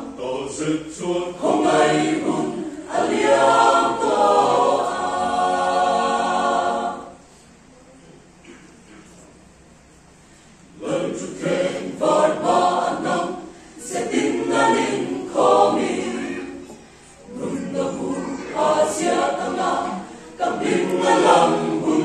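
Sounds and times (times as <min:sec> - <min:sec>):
mixed choir singing: 0:00.0 - 0:07.3, 0:10.7 - 0:22.0.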